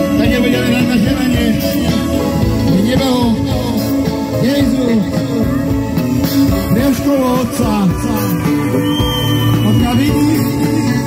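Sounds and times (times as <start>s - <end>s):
drum kit: 0.0s - 11.0s
electric guitar: 0.0s - 11.0s
keyboard: 0.0s - 11.0s.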